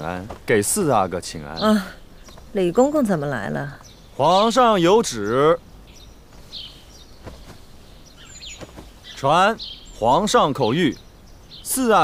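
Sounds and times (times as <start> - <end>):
clothing rustling: 0.0 - 1.0, 6.2 - 9.3
birds chirping: 0.0 - 12.0.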